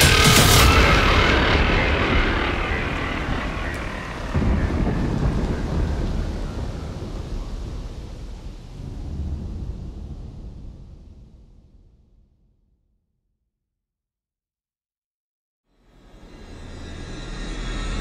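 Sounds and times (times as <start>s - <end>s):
roaring wash of noise: 0.0s - 11.3s
low rumble: 0.0s - 12.9s.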